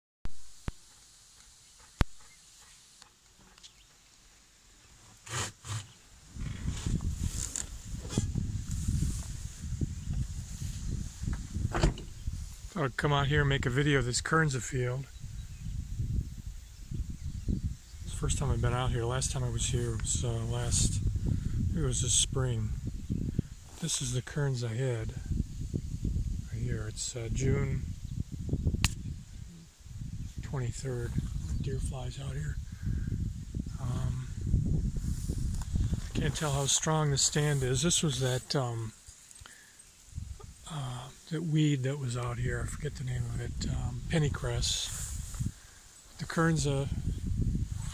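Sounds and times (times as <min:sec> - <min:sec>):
wind buffeting microphone: 0:06.2 - 0:24.4, 0:25.0 - 0:39.0, 0:40.1 - 0:41.2, 0:42.1 - 0:47.9
sharp click: 0:28.8 - 0:29.0.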